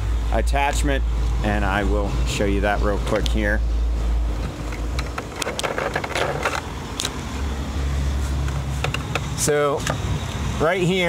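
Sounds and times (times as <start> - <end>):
camera handling clicks and rustles: 4.6 - 7.2.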